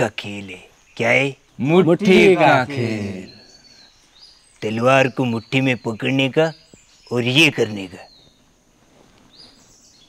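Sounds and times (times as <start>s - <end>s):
bird chirping: 0.0s - 10.0s
low background noise: 0.0s - 10.0s.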